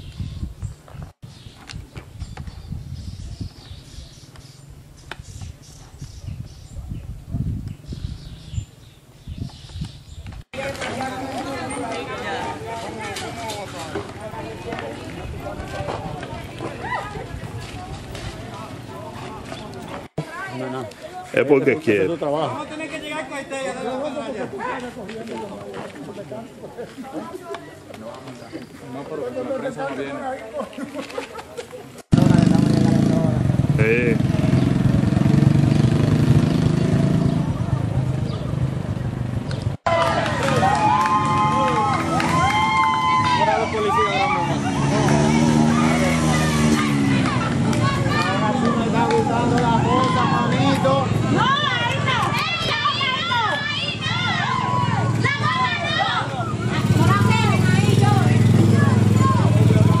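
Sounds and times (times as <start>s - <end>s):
people's voices: 10.5s - 60.0s
motorcycle engine running: 32.2s - 39.8s, 44.5s - 52.0s, 56.4s - 60.0s.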